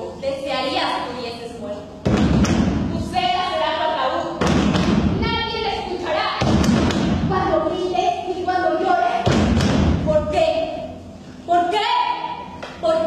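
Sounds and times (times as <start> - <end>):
heavy thuds on a stage: 2.0 - 3.2, 4.4 - 5.3, 6.4 - 7.5, 9.2 - 10.2.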